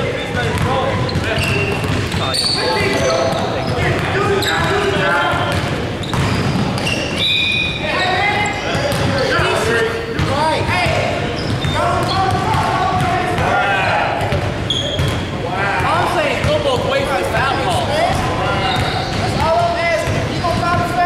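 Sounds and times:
basketball bouncing: 0.2s - 7.2s, 10.1s - 13.6s, 14.2s - 21.0s
shoes squeaking on wooden floor: 0.7s - 9.6s, 11.2s - 12.4s, 14.7s - 15.4s, 17.6s - 19.5s
players shouting: 6.7s - 14.7s.

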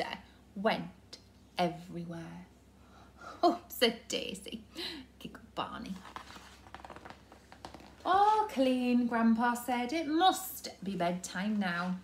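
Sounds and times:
paper pages rustling: 5.9s - 8.1s.

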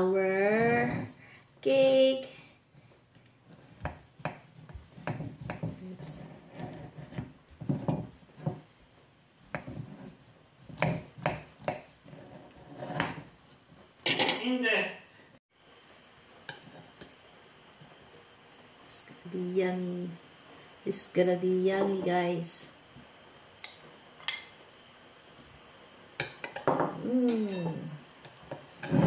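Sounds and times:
knife scraping plate: 3.5s - 8.6s, 9.6s - 13.3s.

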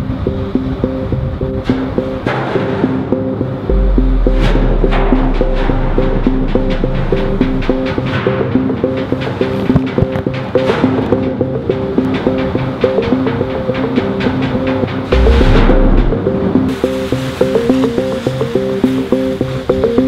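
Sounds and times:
repeating plucked notes: 3.4s - 9.7s, 15.0s - 16.8s
deep low note: 3.7s - 8.1s, 15.1s - 16.6s.

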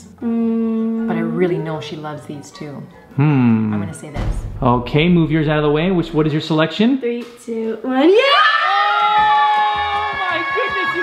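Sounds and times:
background music: 0.0s - 7.0s, 8.1s - 11.0s
women screaming excitedly: 8.2s - 11.0s.

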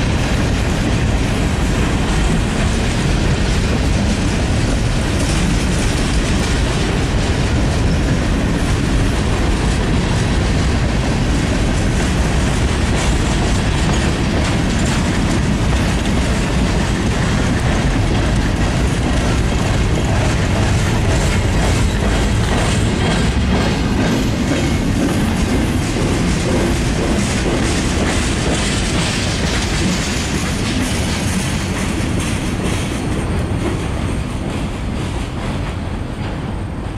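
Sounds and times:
wheels clattering over rail joints: 0.0s - 36.5s.

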